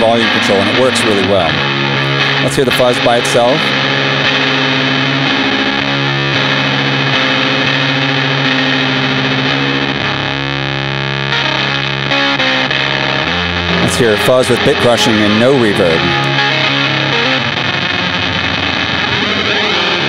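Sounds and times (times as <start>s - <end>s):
fuzz distorted electric guitar: 0.0s - 20.0s.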